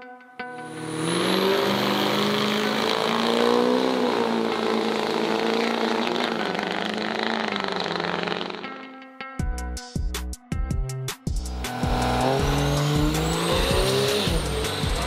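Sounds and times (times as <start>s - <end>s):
diesel truck accelerating hard: 0.6s - 8.8s, 11.5s - 15.0s.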